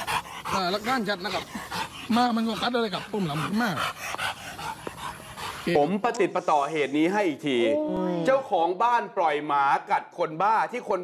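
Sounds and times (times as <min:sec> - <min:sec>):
breathy dog sounds: 0:00.0 - 0:07.1.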